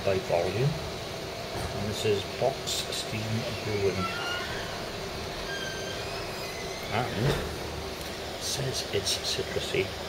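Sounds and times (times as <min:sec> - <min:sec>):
pub room background noise: 0:00.0 - 0:10.0.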